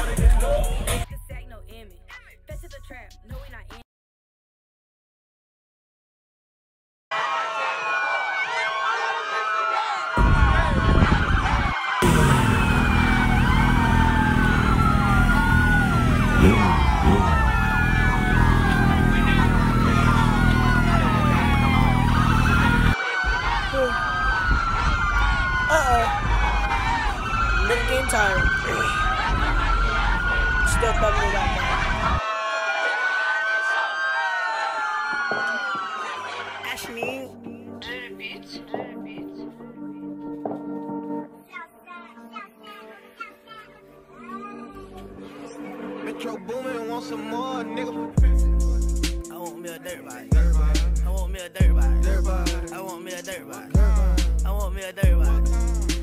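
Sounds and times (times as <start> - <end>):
sirens wailing: 7.1 - 41.3, 45.1 - 56.0
street noise: 7.2 - 37.8, 44.9 - 56.0.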